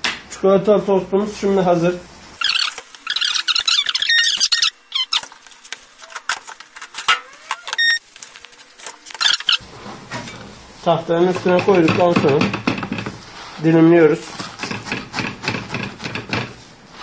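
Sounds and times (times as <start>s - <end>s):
contact grill squeaking and clattering: 2.4s - 10.6s
short high beeps: 7.7s - 8.0s.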